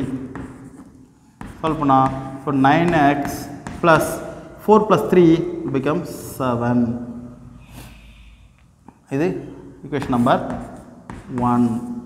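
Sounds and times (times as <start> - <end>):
man speaking: 1.6 - 7.4, 9.0 - 12.0
man sniffing: 7.5 - 8.7.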